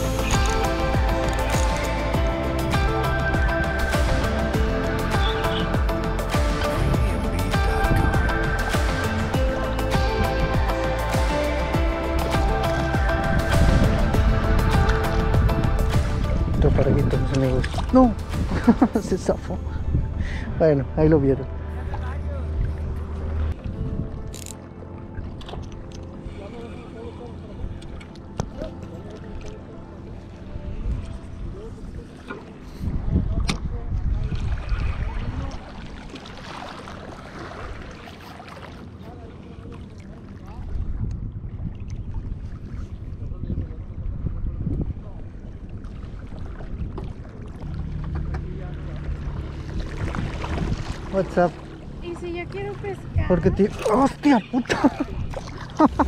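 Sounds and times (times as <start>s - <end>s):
wind rumbling on microphone: 0.0s - 10.8s, 11.8s - 26.2s, 30.1s - 38.4s, 39.1s - 56.0s
distant motorboat engine humming: 0.0s - 33.0s, 45.2s - 56.0s.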